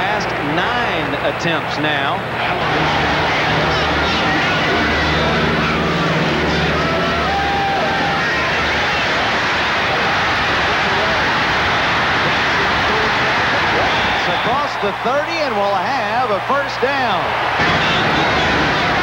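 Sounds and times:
stadium crowd cheering: 0.0 - 19.0.

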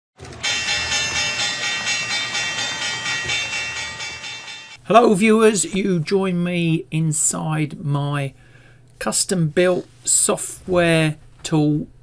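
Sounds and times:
pulsing bright chord: 0.4 - 4.8.

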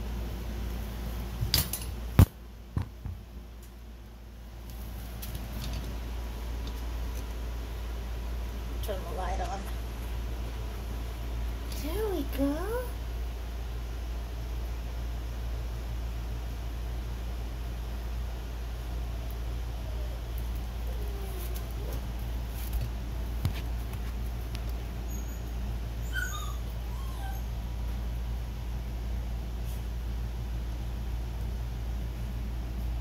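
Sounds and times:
steady low hum: 0.0 - 33.0
puppies squeaking and whimpering: 25.0 - 27.6.

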